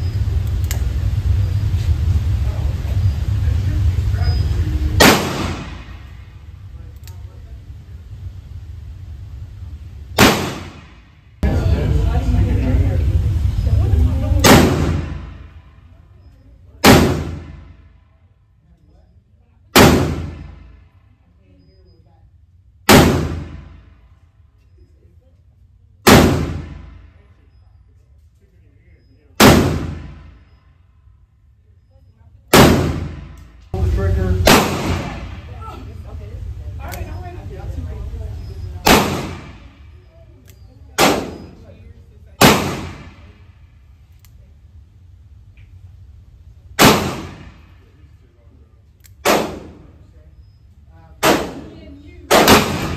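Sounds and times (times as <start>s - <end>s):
revolver shots with echo: 5.0s - 6.4s, 10.2s - 11.1s, 14.4s - 15.6s, 16.8s - 17.8s, 19.8s - 20.9s, 22.9s - 23.9s, 26.0s - 27.2s, 29.4s - 30.5s, 32.5s - 33.6s, 34.2s - 35.7s, 38.7s - 39.8s, 40.6s - 41.7s, 42.4s - 43.5s, 46.8s - 47.9s, 49.2s - 50.0s, 51.2s - 52.9s.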